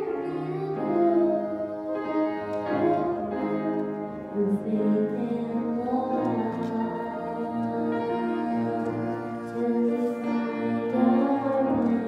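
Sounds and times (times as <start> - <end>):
boy singing into microphone: 0.0 - 12.0
instrumental accompaniment: 0.0 - 12.0.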